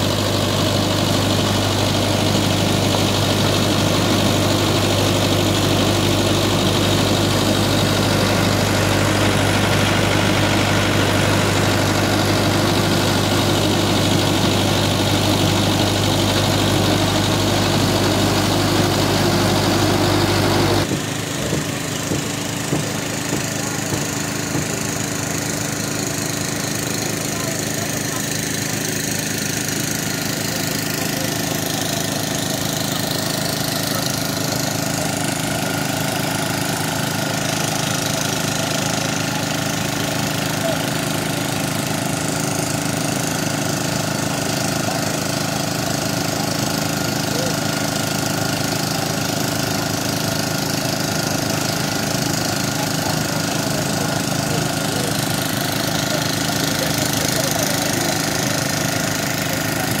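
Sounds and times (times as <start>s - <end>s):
engine humming steadily: 0.0s - 60.0s.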